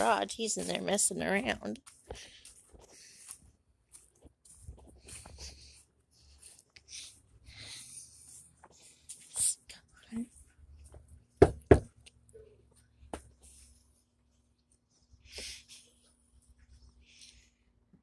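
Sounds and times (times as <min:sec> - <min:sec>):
faint footsteps: 0:00.0 - 0:06.6
knuckles knocking on door: 0:11.4 - 0:11.9.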